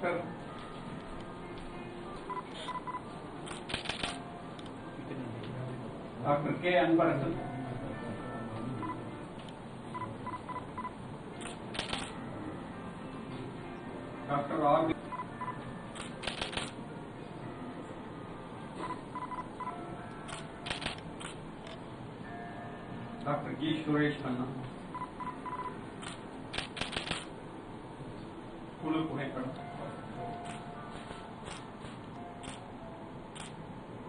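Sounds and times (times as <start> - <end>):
sharp clicks: 26.0 - 27.3.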